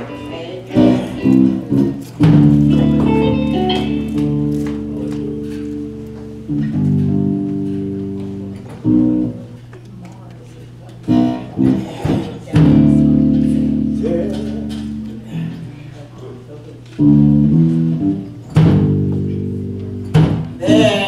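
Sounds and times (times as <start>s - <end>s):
church band playing chords: 0.0s - 10.1s, 10.8s - 21.0s
bass line: 0.7s - 9.6s, 11.1s - 15.8s, 17.0s - 21.0s.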